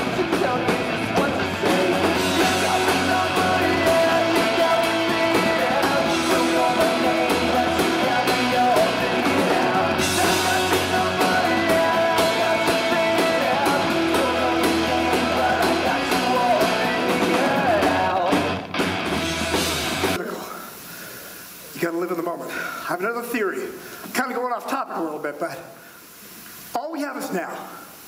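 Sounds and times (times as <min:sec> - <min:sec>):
rock backing track: 0:00.0 - 0:20.2
drum kit playing: 0:00.0 - 0:20.3.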